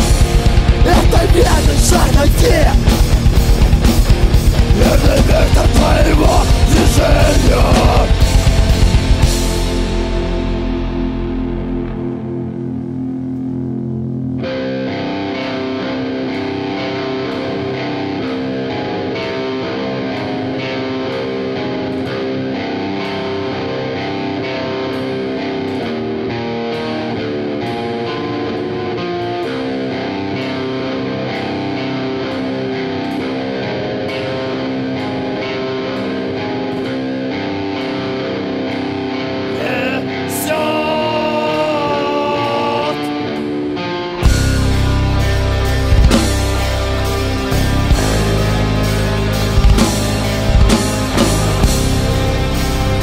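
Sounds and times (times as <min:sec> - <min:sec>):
steady drum beat: 0:00.0 - 0:10.4, 0:44.2 - 0:53.0
distorted electric guitars: 0:00.0 - 0:53.0.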